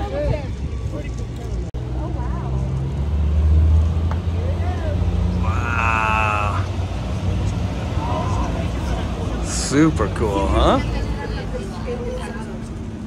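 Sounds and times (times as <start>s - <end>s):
engine drone: 0.6s - 13.0s
voices: 4.1s - 13.0s.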